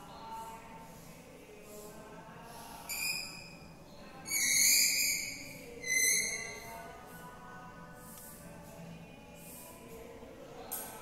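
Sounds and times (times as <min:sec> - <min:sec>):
chalk squeaking on a blackboard: 0:02.9 - 0:03.6, 0:04.2 - 0:06.7.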